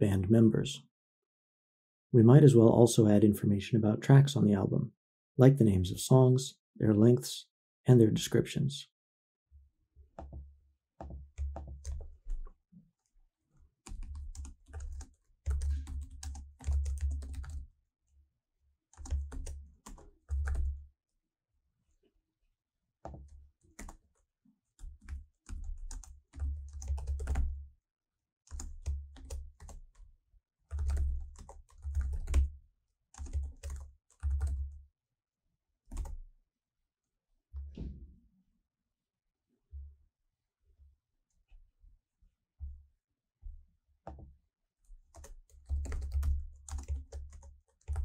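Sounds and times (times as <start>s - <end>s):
typing on computer keyboard: 11.0s - 12.5s, 13.8s - 17.6s, 18.9s - 20.8s, 23.1s - 24.0s, 24.8s - 27.6s, 28.5s - 30.0s, 30.7s - 32.5s, 33.2s - 34.8s, 35.9s - 36.2s, 45.0s - 48.0s.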